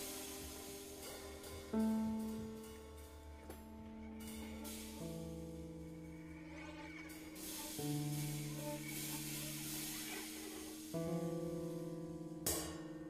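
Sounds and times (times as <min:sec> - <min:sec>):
cymbal scraped with drumstick: 0:00.0 - 0:12.9.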